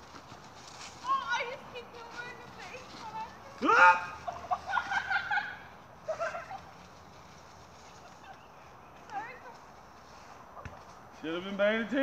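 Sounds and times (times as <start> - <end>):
person crying and yelping: 3.6 - 6.6.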